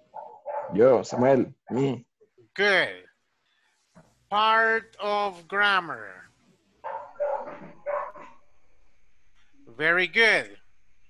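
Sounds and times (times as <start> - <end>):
dog barking: 0.1 - 1.5, 6.8 - 8.4.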